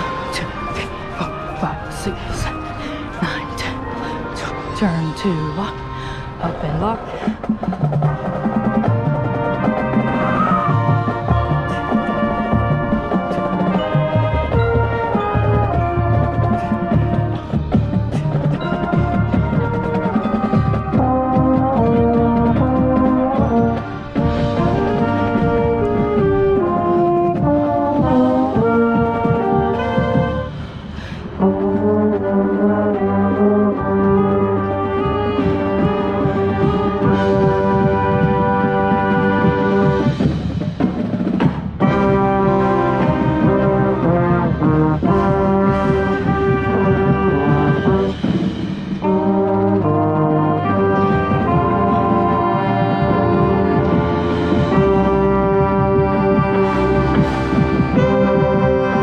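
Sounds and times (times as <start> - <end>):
marching band brass: 0.0 - 4.5, 6.6 - 59.0
percussion: 0.0 - 59.0.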